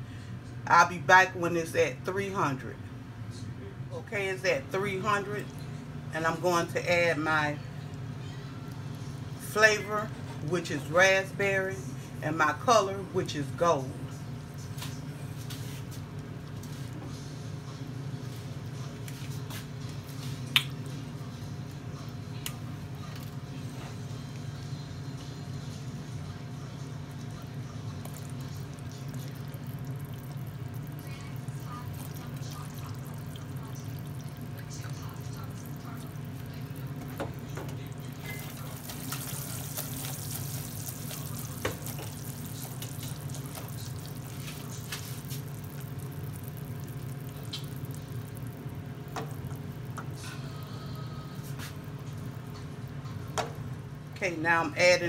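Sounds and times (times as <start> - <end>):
sugar syrup bubbling and popping: 27.1 - 50.2.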